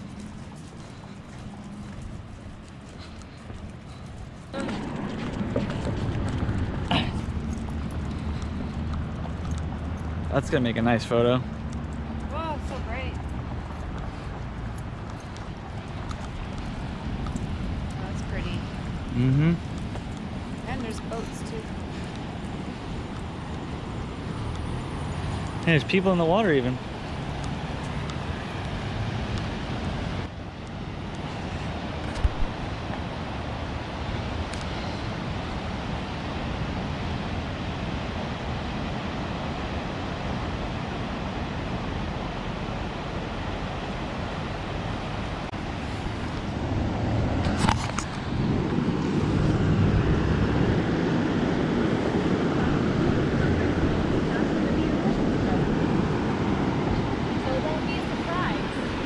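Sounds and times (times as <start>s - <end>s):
ocean surf: 0.0s - 59.0s.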